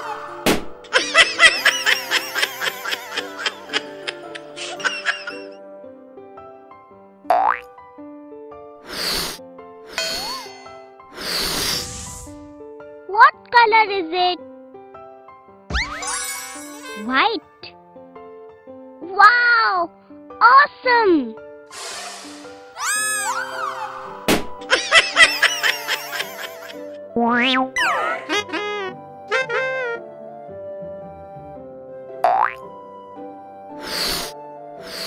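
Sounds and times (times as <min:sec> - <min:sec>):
light children's music: 0:00.0 - 0:35.0
loud swishing burst: 0:11.2 - 0:12.5.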